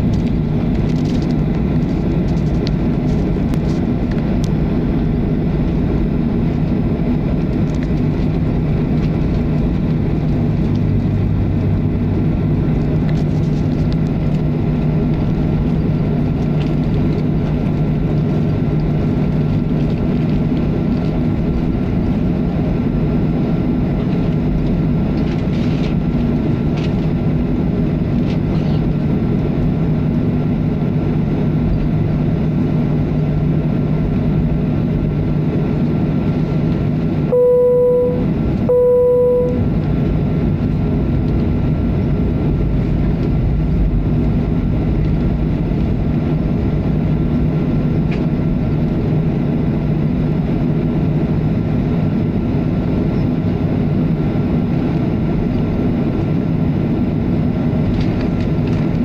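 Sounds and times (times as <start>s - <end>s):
aircraft engines humming: 0.0s - 59.0s
loud even beeps: 37.3s - 39.7s.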